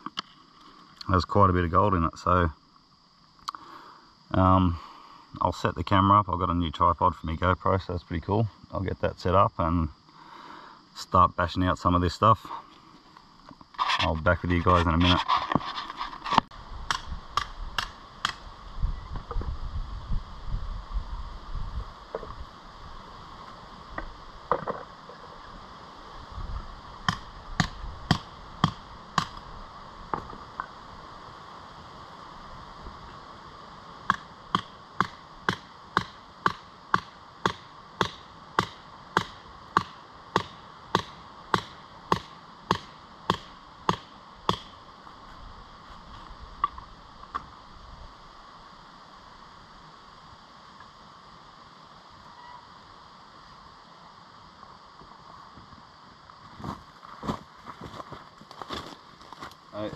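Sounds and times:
hammer striking rock: 0:27.1 - 0:29.4, 0:34.1 - 0:44.7.

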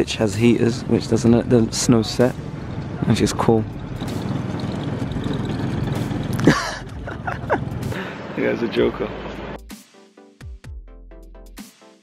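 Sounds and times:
mower engine running: 0:00.7 - 0:08.4.

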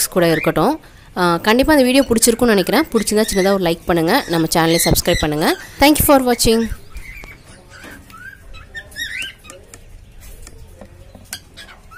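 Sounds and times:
chicks peeping: 0:01.5 - 0:11.9.

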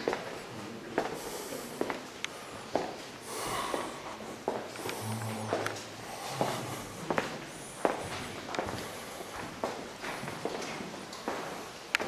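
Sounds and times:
footsteps on cave path: 0:01.8 - 0:12.0.

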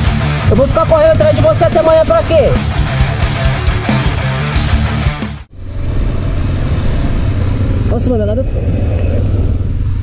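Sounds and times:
rock music: 0:00.0 - 0:05.5
motorcycle engine running: 0:00.0 - 0:10.0.

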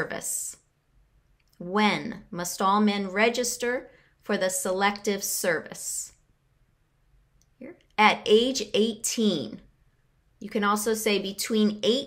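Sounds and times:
woman speaking: 0:00.0 - 0:00.6, 0:01.6 - 0:06.2, 0:07.6 - 0:09.7, 0:10.4 - 0:12.0.

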